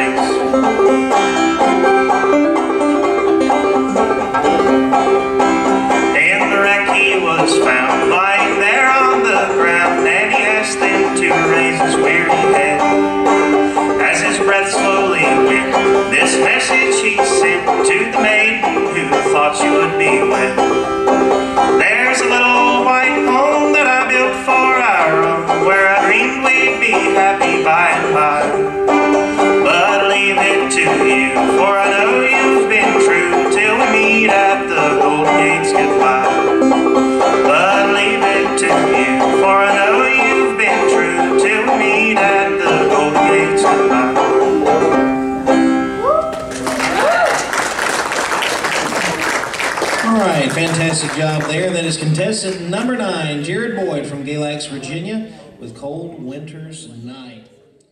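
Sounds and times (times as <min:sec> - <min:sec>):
solo banjo picking: 0:00.0 - 0:45.9
audience applause: 0:46.2 - 0:51.8.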